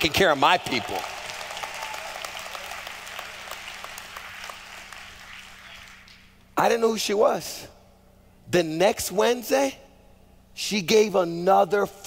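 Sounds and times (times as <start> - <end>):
congregation applauding: 0.0 - 6.3.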